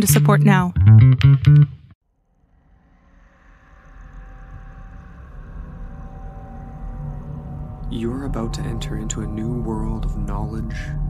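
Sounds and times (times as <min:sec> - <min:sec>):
low rumbling drone: 0:02.0 - 0:11.0.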